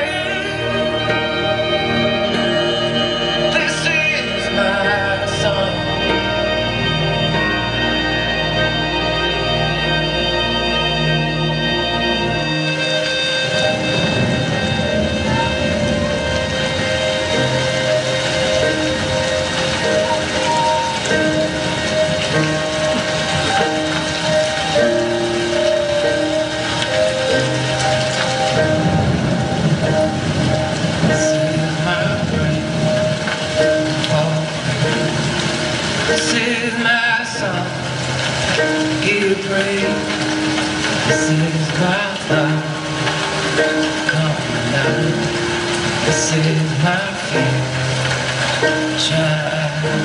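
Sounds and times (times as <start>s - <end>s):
slow held music notes: 0.0s - 50.0s
steady rain downpour: 0.0s - 50.0s
thunder: 13.4s - 36.6s.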